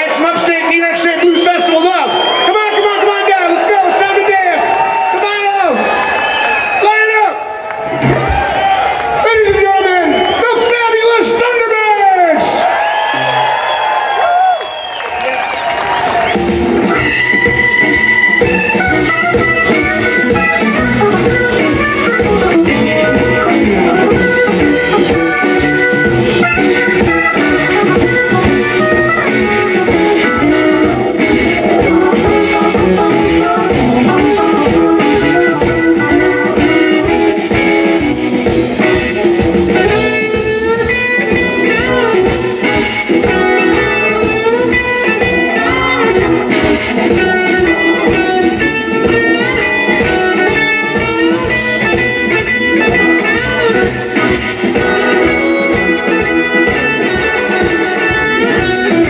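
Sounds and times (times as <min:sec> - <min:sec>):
blues band groove: 0:00.0 - 0:59.0
electric guitar bent notes: 0:16.0 - 0:59.0.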